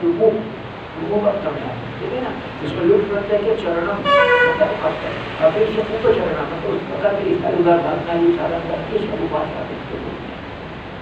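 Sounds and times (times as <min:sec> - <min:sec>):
man speaking: 0:00.0 - 0:10.2
short horn toot: 0:04.0 - 0:04.6.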